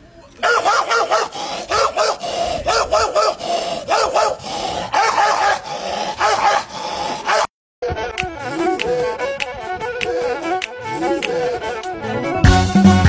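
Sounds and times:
man beatboxing: 8.0 - 12.6.

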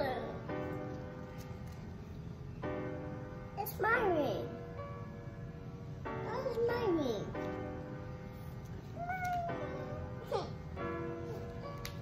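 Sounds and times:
toddler crying: 9.0 - 10.6.

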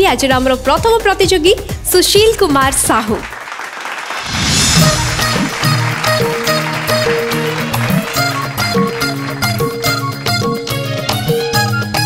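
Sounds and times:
woman's voice: 0.0 - 3.3
children applauding: 3.1 - 10.9.

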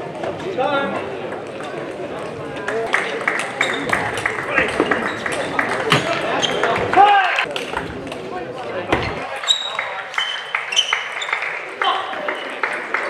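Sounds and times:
shoe squeal: 4.7 - 6.9, 8.9 - 11.5.

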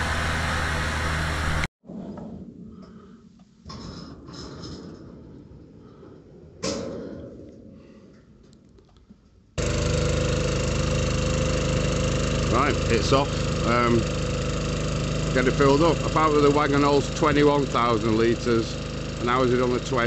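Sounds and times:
truck engine running loudly: 0.0 - 1.7, 9.6 - 20.0.

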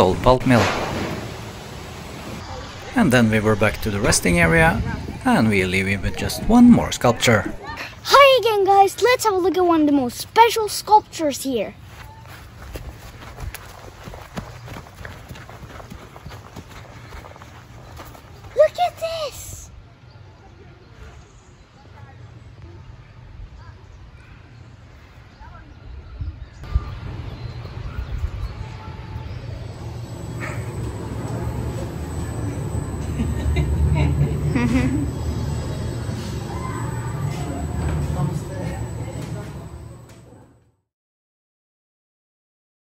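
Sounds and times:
footsteps running on grass: 11.8 - 19.0
low steady rumble: 26.6 - 40.5.

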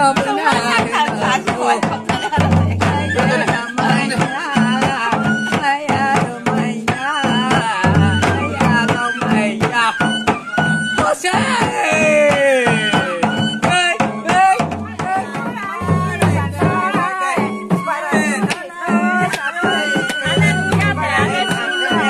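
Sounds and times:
barrel drum beaten quickly: 0.0 - 22.0
voices singing: 0.0 - 22.0.

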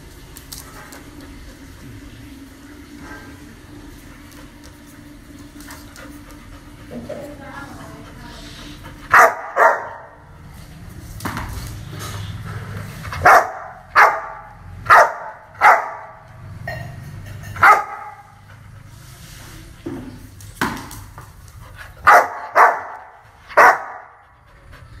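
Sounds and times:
steady low hum: 0.0 - 25.0
dog panting: 3.9 - 15.0, 17.5 - 20.3, 21.3 - 25.0
dog barking: 9.1 - 10.2, 13.2 - 16.3, 17.6 - 18.4, 22.0 - 24.3.

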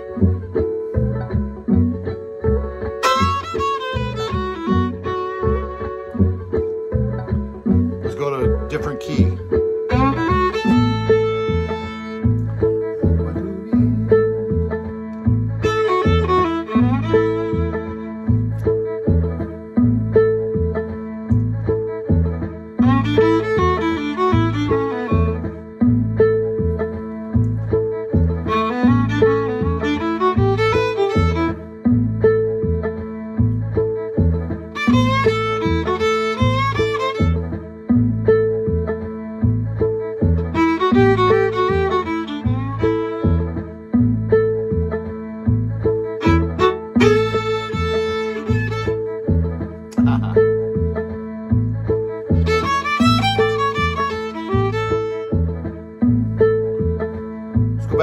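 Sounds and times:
backing groove with bass pulse: 0.0 - 58.0
blues violin phrases: 2.4 - 7.0, 7.7 - 38.2, 39.0 - 50.8, 52.0 - 58.0.

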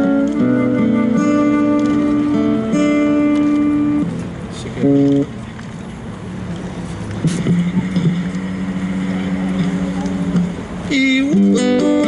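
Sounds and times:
city street noise: 0.0 - 12.0.

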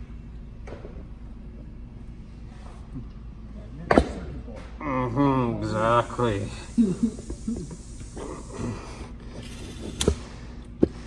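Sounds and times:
person laughing: 6.7 - 7.9.

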